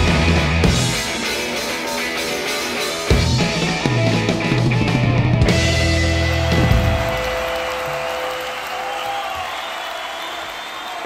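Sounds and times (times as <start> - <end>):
applause: 6.0 - 11.0.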